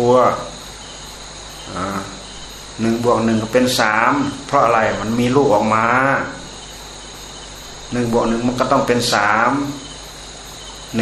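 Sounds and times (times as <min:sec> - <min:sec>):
man speaking: 0:00.0 - 0:00.6, 0:01.7 - 0:06.5, 0:07.9 - 0:09.9
insects droning: 0:00.0 - 0:11.0.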